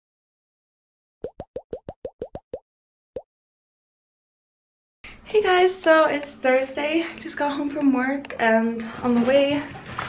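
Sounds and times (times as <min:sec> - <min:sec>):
cartoon pops rising in pitch: 0:01.2 - 0:02.6.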